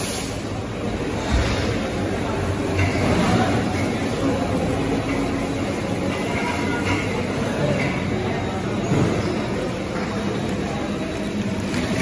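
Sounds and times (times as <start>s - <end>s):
processing machinery rumbling: 0.0s - 12.0s.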